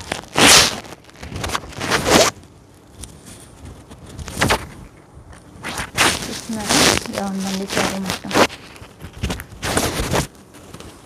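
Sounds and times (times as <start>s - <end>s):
cloth swish: 0.0s - 2.3s, 5.6s - 8.6s
fabric rustling: 0.0s - 11.0s.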